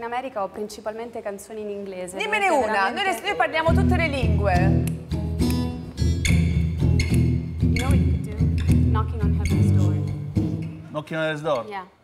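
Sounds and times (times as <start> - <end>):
acoustic guitar strumming chords: 3.7 - 11.0.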